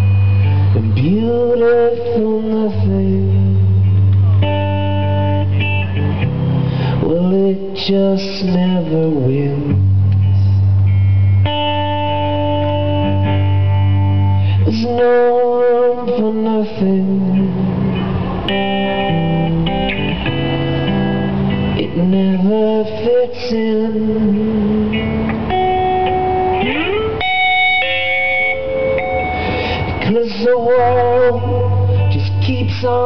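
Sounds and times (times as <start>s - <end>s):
guitar chord ringing: 0.0s - 33.0s
live instrumental music: 3.2s - 7.0s, 9.7s - 16.1s, 17.5s - 23.0s, 23.9s - 33.0s.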